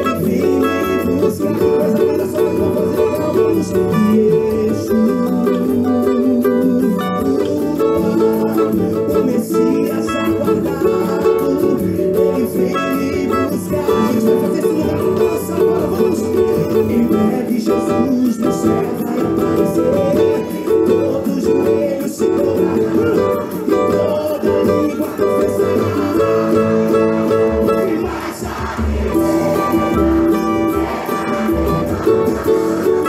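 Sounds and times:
gospel band music: 0.0 - 33.0
strummed cavaquinho: 0.0 - 33.0.

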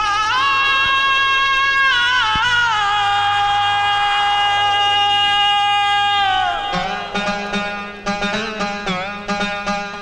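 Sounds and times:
man singing a high note: 0.0 - 8.0.

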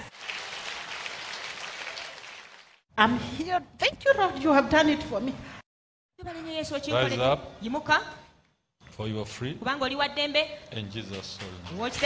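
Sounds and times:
congregation clapping: 0.0 - 2.8.

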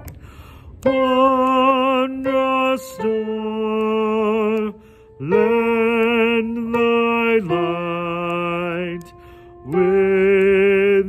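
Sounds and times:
man singing with vibrato: 0.8 - 11.0.

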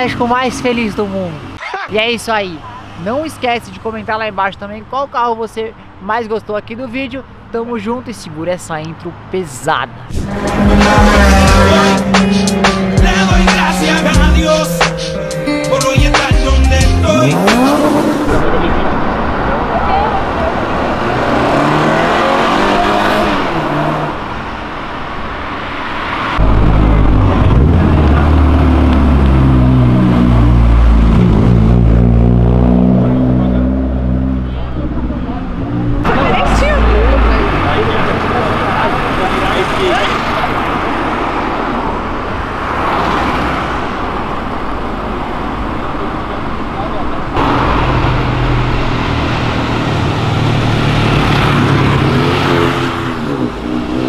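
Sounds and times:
car engines revving past: 10.0 - 16.0, 17.0 - 54.0.

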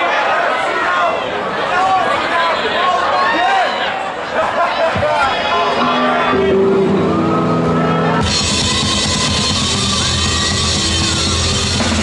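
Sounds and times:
electric guitars droning chord: 5.6 - 12.0.

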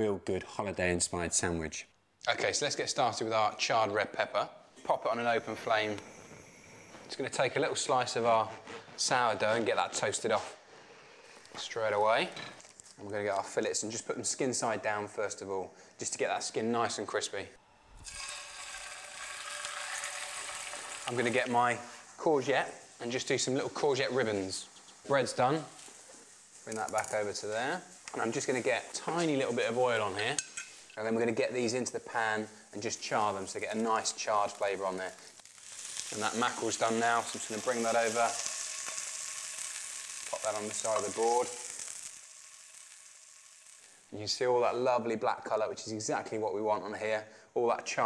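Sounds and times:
fish sizzling in hot oil: 5.3 - 7.8, 17.7 - 44.9.

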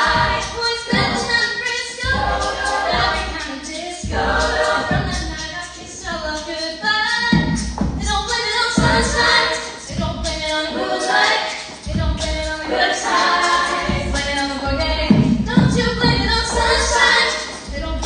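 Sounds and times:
women singing backing harmonies: 0.0 - 18.0.

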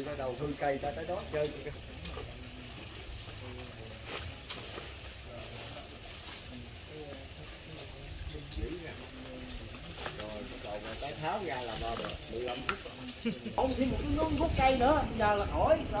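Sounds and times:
faint indistinct voices: 0.0 - 16.0
steady hiss: 0.0 - 16.0.

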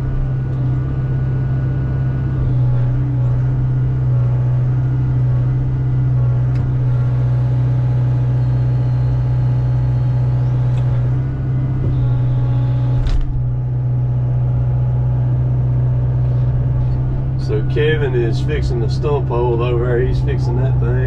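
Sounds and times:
diesel engine low hum: 0.0 - 21.0.

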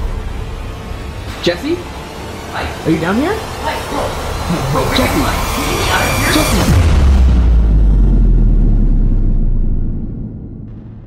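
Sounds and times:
deep trailer boom rumble: 5.1 - 11.0.

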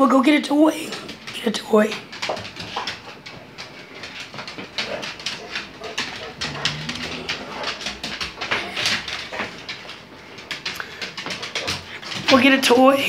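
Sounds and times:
dog claws clicking and scuffling: 0.2 - 13.0
low dog whine: 5.8 - 9.0.

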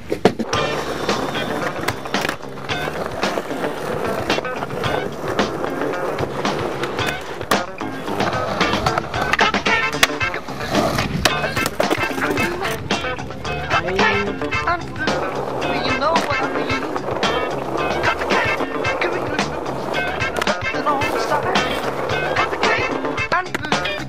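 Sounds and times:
skateboard wheels rolling on concrete: 0.0 - 24.0
skateboard wooden clacks: 0.0 - 24.0
background music: 0.4 - 24.0.

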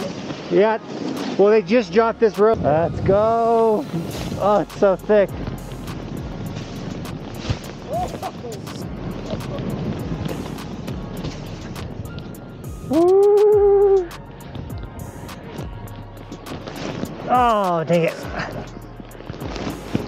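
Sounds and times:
snowboard rushing through powder: 0.0 - 12.1, 16.4 - 20.0
snow crunching: 0.0 - 13.2, 15.3 - 20.0
rider whooping: 12.9 - 14.1.

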